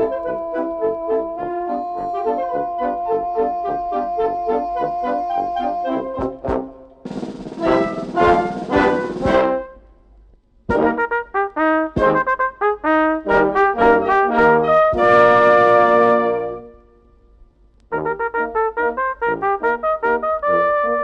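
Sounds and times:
wind band playing dance tune: 0:00.0 - 0:09.8, 0:10.7 - 0:16.7.

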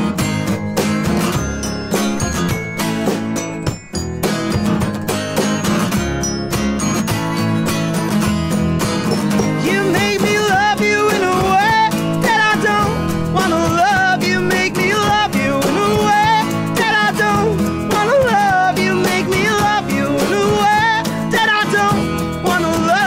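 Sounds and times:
acoustic band playing: 0:00.0 - 0:23.0
people singing: 0:09.6 - 0:23.0.

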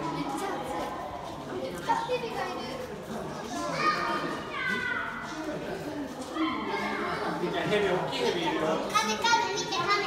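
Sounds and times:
children talking and calling out: 0:00.0 - 0:10.0
people chattering: 0:00.0 - 0:10.0.

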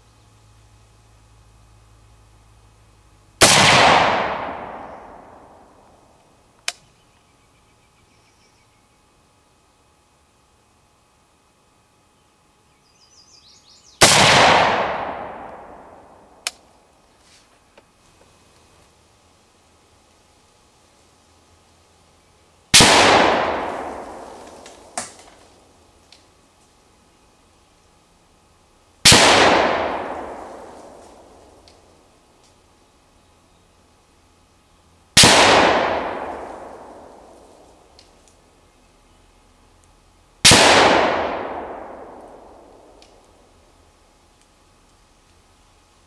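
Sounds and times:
rifle shot: 0:03.4 - 0:06.0, 0:14.0 - 0:16.7, 0:22.7 - 0:25.7, 0:29.0 - 0:31.9, 0:35.2 - 0:38.2, 0:40.4 - 0:43.5
faint sharp crack: 0:22.8 - 0:26.3, 0:40.5 - 0:43.4.

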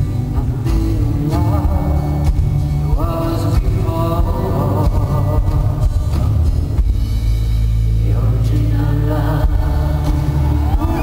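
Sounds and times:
person singing: 0:00.0 - 0:06.7, 0:08.0 - 0:11.0
live rock band: 0:00.0 - 0:11.0.

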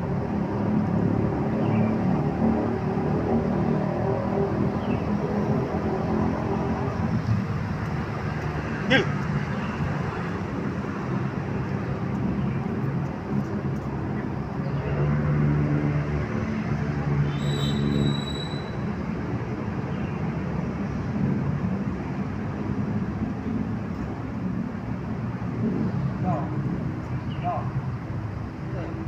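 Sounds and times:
traffic drone: 0:00.0 - 0:29.0.

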